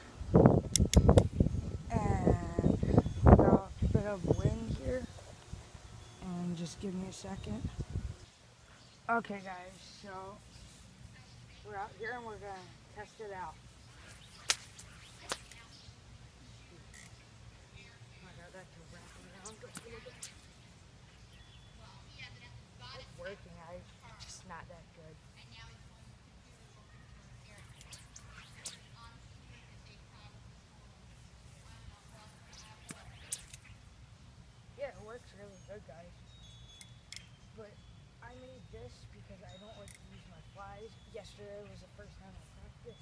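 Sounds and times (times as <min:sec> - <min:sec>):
wind rumble on microphone: 0:00.0 - 0:06.0, 0:07.2 - 0:08.3
fly line cracking: 0:13.8 - 0:15.8, 0:19.0 - 0:20.8, 0:27.4 - 0:29.3, 0:32.2 - 0:34.0.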